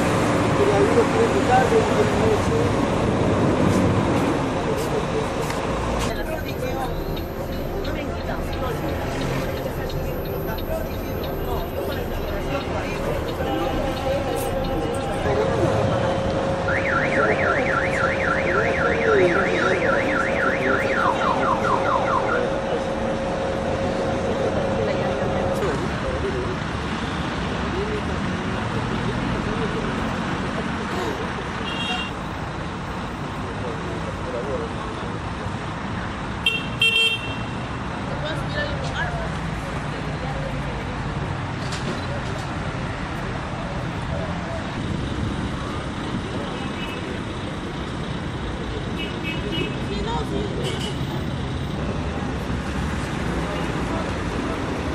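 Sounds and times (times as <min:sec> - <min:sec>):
voices: 0:00.5 - 0:32.2
electronic siren sweeps: 0:06.1 - 0:25.6
coach engine idling: 0:06.1 - 0:25.8.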